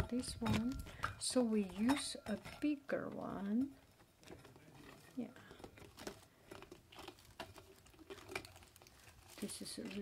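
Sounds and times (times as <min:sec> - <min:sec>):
silicone lid crinkling and clicking: 0:00.0 - 0:10.0.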